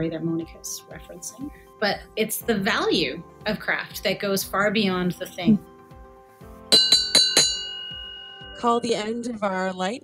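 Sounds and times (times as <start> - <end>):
bell-like chime notes: 6.7 - 9.7.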